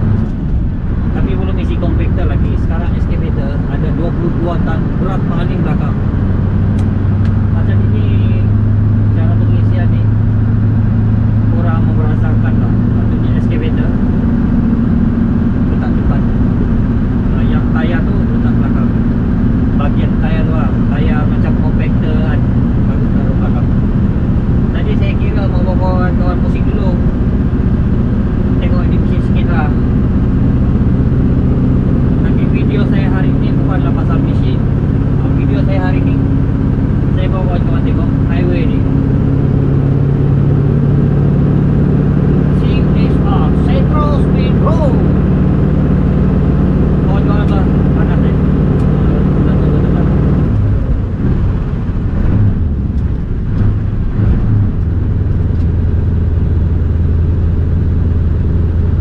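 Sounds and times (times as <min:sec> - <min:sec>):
truck diesel engine droning: 0:00.0 - 0:59.0.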